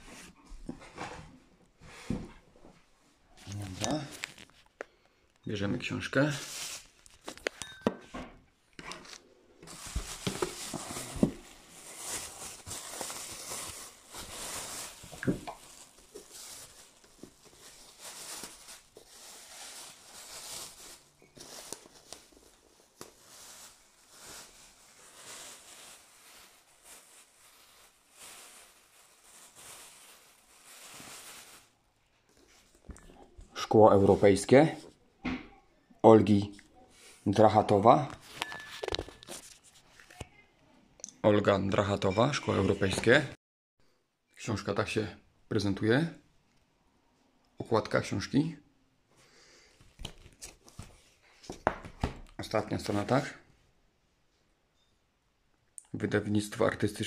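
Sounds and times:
plastic bag crinkling: 3.5s - 4.8s, 6.2s - 7.6s, 8.8s - 31.8s.

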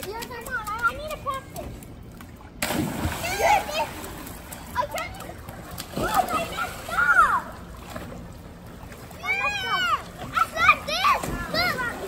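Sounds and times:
water splashing in a pool: 0.0s - 12.0s
children calling out: 3.1s - 4.2s, 6.0s - 7.7s, 9.1s - 12.0s.

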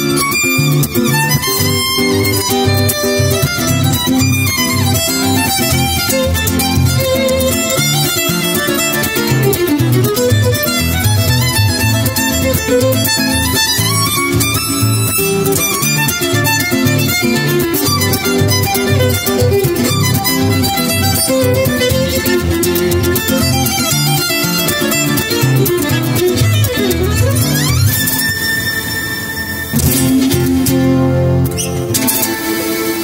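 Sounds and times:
bowed violin melody: 0.0s - 33.0s
strummed guitar: 0.0s - 33.0s.

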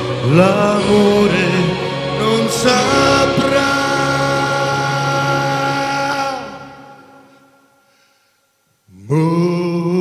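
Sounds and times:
sustained backing music: 0.0s - 7.9s
musical theatre singing: 0.0s - 8.0s.

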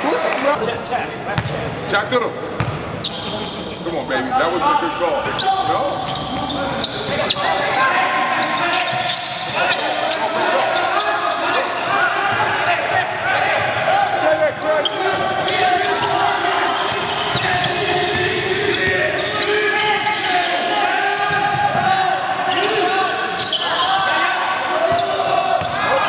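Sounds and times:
players calling and chatter: 0.0s - 26.0s.

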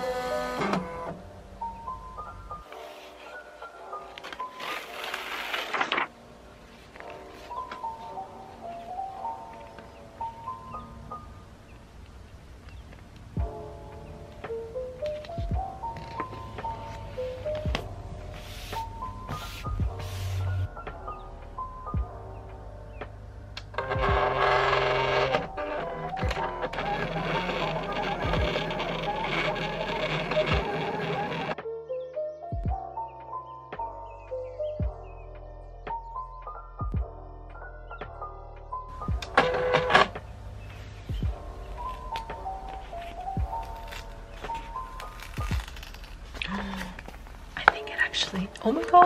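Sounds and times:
background music: 0.0s - 49.0s
paper crinkling with sharp clicks: 4.0s - 7.9s, 41.7s - 47.9s
cutting machine whirring: 23.8s - 31.6s
person speaking: 46.4s - 49.0s.

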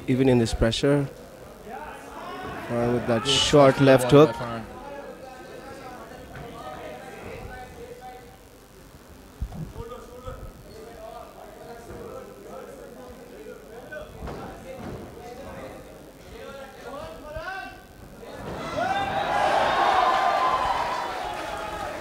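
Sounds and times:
crowd shouting: 1.8s - 4.7s, 18.3s - 22.0s.

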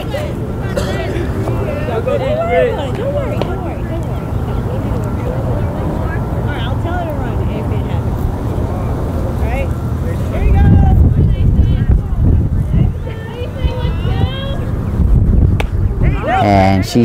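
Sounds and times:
distant voices calling out: 0.0s - 17.0s
steady low rumble: 0.0s - 17.0s.

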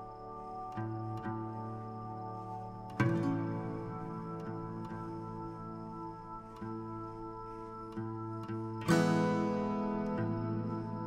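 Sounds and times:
plucked strings music: 0.0s - 11.0s.

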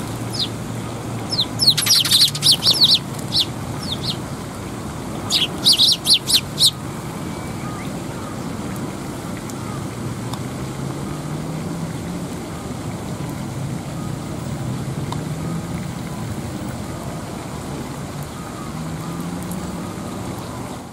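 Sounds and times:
low engine drone: 0.0s - 14.9s.

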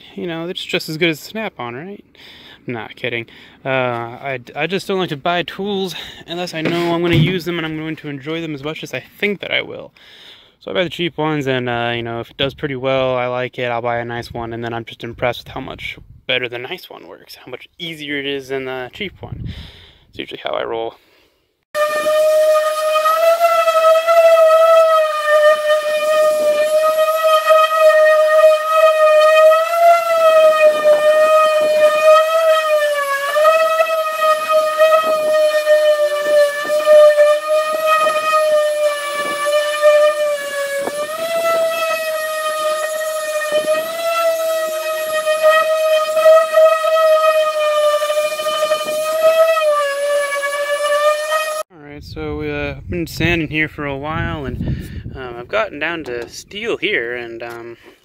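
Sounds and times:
orbital sander whining on metal: 6.6s - 7.7s, 21.8s - 51.7s.

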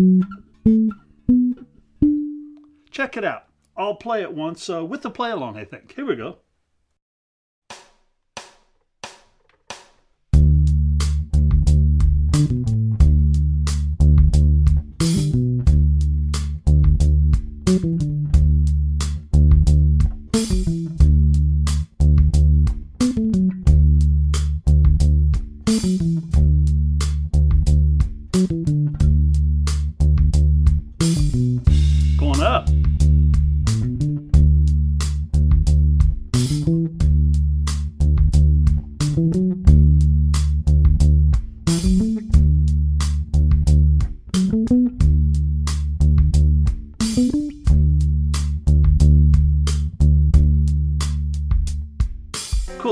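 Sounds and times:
electric bass: 0.0s - 2.7s, 10.4s - 52.4s
backing track: 0.0s - 4.3s, 27.2s - 45.3s, 52.4s - 52.9s
drums: 7.7s - 52.9s.

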